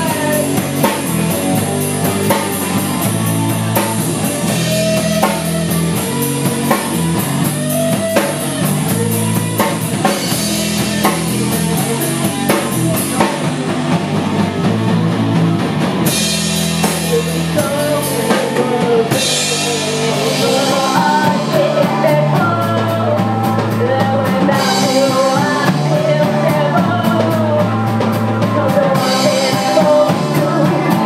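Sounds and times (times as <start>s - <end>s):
drum kit beat: 0.0s - 31.0s
electric bass: 0.0s - 31.0s
electric guitar: 0.0s - 31.0s.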